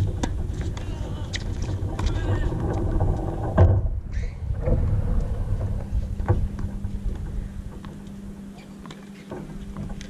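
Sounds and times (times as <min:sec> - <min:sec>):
wind on microphone: 0:00.0 - 0:08.5.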